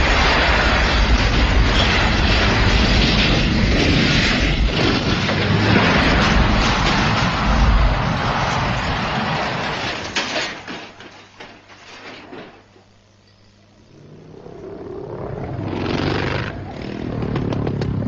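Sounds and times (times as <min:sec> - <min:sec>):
truck crashing and rolling over: 0:00.0 - 0:12.7.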